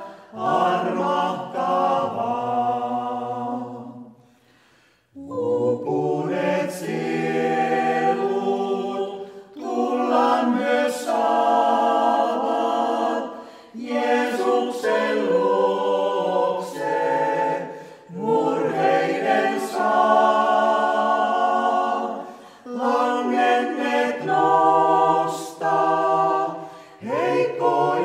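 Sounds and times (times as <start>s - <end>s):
vocal ensemble singing a cappella hymn: 0.0s - 28.0s.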